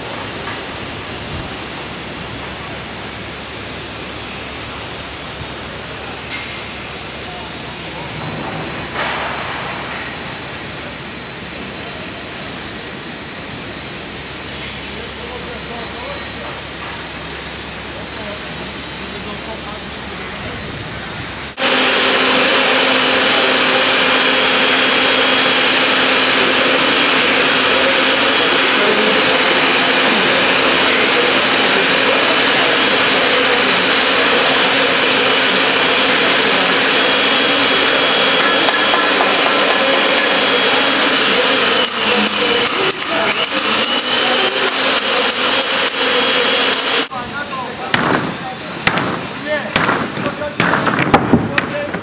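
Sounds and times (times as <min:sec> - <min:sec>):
pipe threading machine motor hum: 0:21.6 - 0:47.1.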